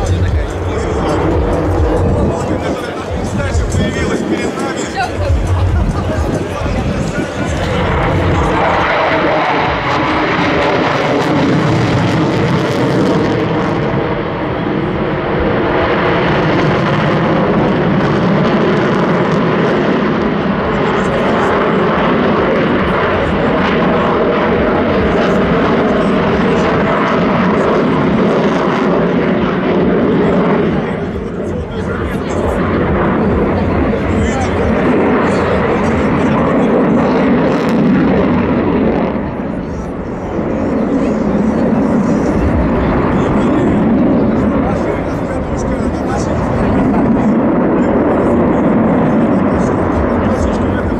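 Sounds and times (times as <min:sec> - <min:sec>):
loud fighter jet noise: 0:00.0 - 0:50.9.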